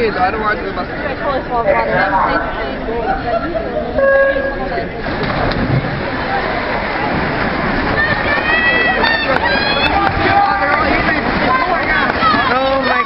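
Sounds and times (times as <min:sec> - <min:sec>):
swimmers splashing: 0:00.0 - 0:13.0
spectators shouting and cheering: 0:06.0 - 0:13.0.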